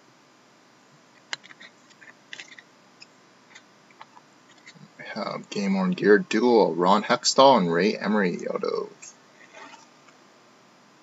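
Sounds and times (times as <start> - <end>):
trading cards sliding and flipping: 1.2 - 2.7, 9.4 - 10.2.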